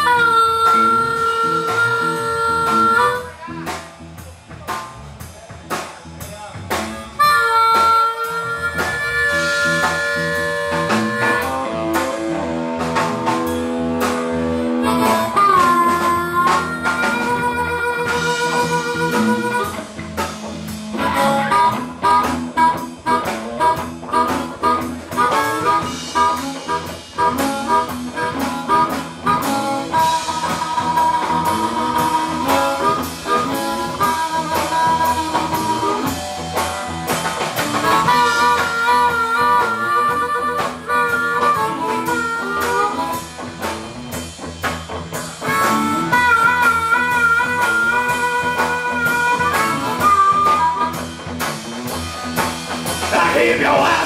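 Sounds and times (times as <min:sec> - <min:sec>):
harmonica bending notes: 0:00.0 - 0:03.9, 0:06.7 - 0:54.0
drum kit: 0:00.0 - 0:54.0
electric bass: 0:00.0 - 0:54.0
electric guitars: 0:00.0 - 0:54.0.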